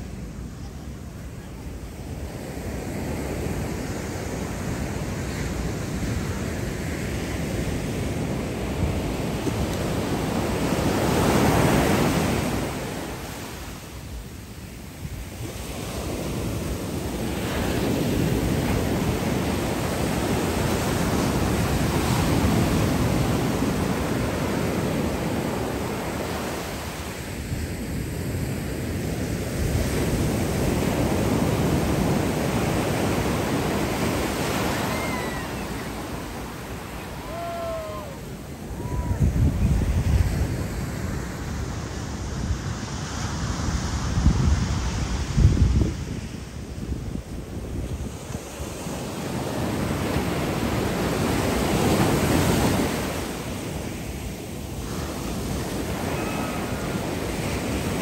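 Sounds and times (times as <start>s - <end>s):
waves breaking on sandy shore: 0.0s - 58.0s.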